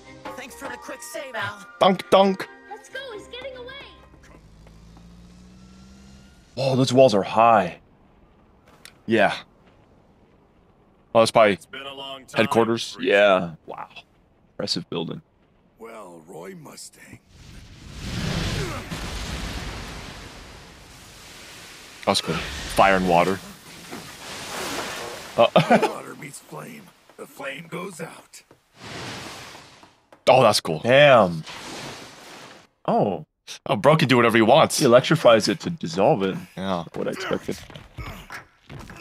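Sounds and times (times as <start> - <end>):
car engines humming: 3.3 - 13.0
explosion noisy rush: 17.2 - 26.8.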